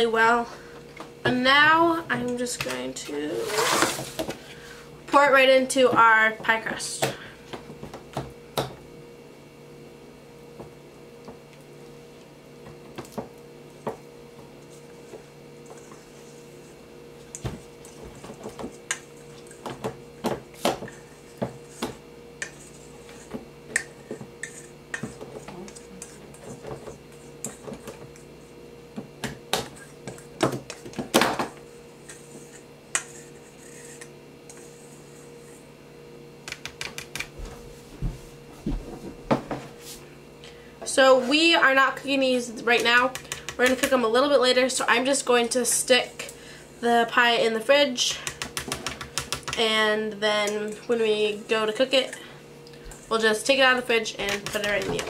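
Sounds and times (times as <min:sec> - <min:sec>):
steady low hum: 0:00.0 - 0:55.0.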